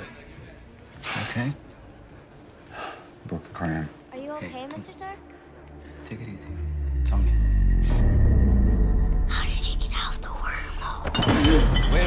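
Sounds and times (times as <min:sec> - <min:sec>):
low droning film music: 0:00.0 - 0:12.0.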